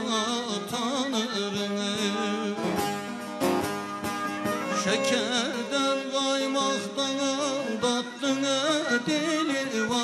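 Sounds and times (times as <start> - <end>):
man singing folk song: 0.0 - 3.4, 4.0 - 10.0
long-necked lute strummed: 0.2 - 10.0.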